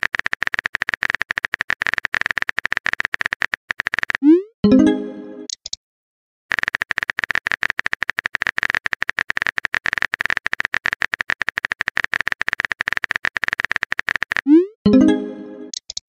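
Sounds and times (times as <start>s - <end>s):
rapid keyboard typing clicks: 0.0s - 4.3s, 6.5s - 14.6s.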